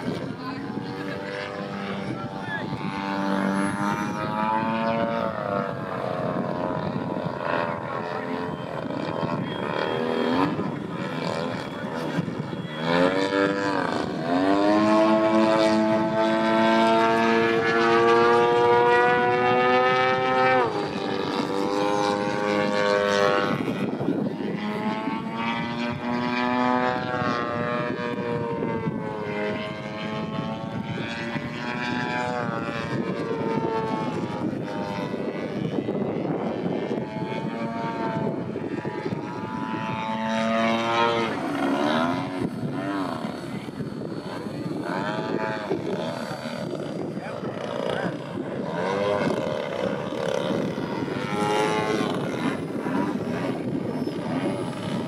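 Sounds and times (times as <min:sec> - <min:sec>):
model airplane engine and propeller: 0:00.0 - 0:55.0.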